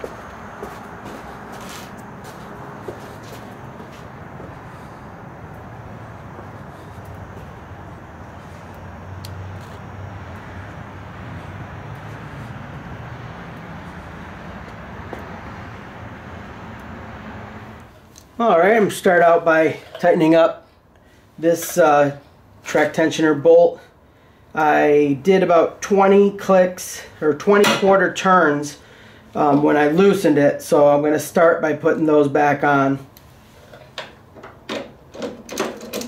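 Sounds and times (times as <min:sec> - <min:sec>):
low rumble and hiss: 0:00.0 - 0:36.0.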